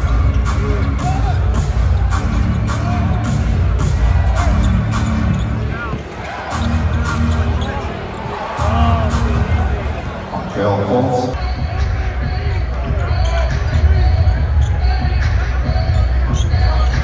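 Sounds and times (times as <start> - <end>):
arena music with heavy bass: 0.0 - 7.9, 8.5 - 17.0
crowd voices: 0.0 - 17.0
sneaker squeaks: 4.3 - 8.4, 14.6 - 17.0.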